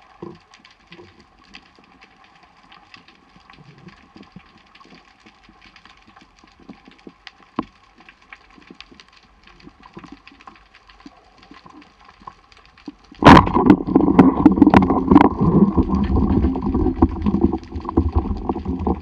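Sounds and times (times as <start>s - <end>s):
faint underwater clicks: 0.0s - 19.0s
rushing water: 13.1s - 19.0s.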